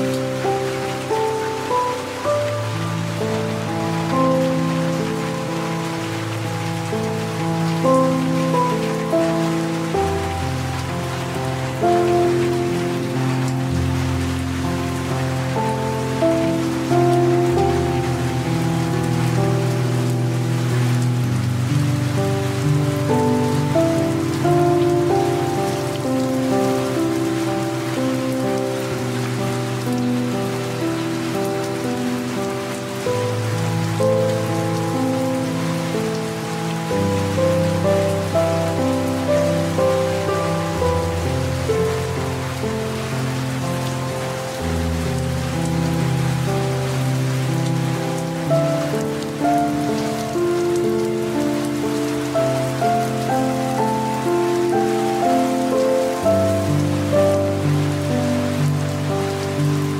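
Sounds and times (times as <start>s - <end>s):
light rain hiss: 0.0s - 59.9s
soft piano music: 0.0s - 59.9s.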